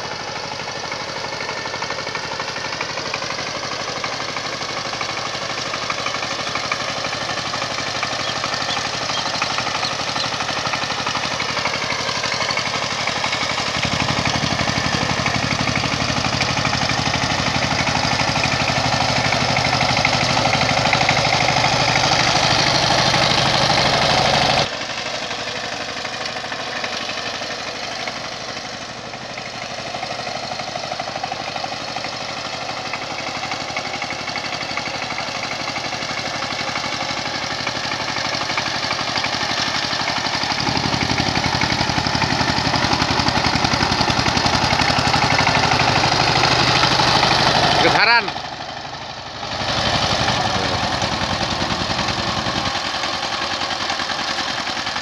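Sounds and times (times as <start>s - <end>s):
diesel engine running under load: 0.0s - 55.0s.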